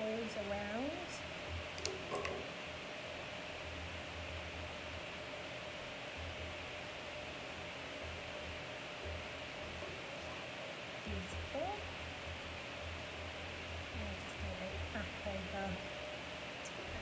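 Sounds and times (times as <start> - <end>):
faint hum: 0.0 - 17.0
room noise hiss: 0.0 - 17.0.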